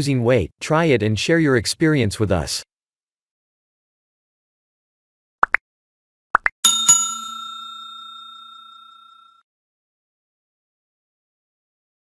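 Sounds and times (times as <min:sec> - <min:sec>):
notification bell ding: 0:06.6 - 0:09.4.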